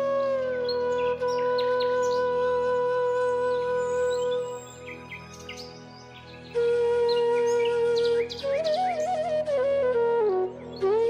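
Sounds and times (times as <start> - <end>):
flute long note: 0.0 - 5.9, 6.5 - 11.0
birds chirping: 3.1 - 9.4.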